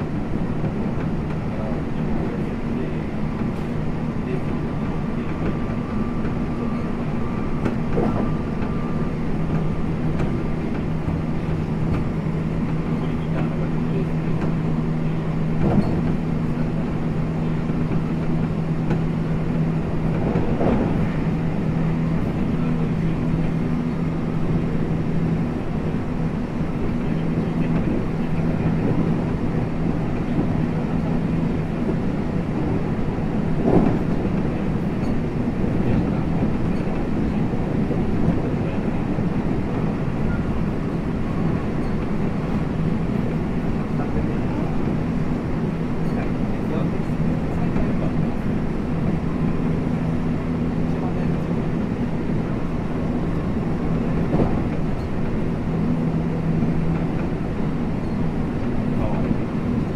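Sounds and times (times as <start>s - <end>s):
train wheels rumbling on rail: 0.0s - 59.9s
track knocks: 15.5s - 16.7s, 26.8s - 49.6s, 51.1s - 59.9s.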